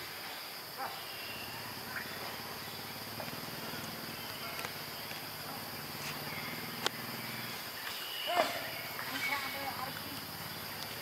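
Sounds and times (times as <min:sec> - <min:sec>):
insects droning: 0:00.0 - 0:11.0
low pulsing insect trill: 0:00.0 - 0:11.0.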